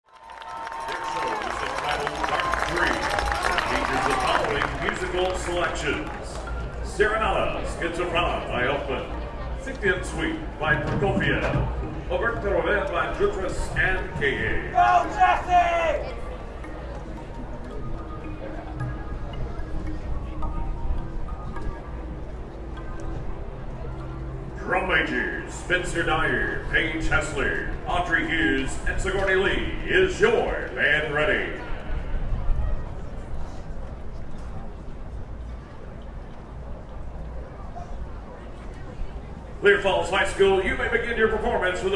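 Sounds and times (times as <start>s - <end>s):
murmur of crowd voices: 0.1s - 41.9s
announcer over public address: 0.9s - 9.0s, 10.0s - 16.4s.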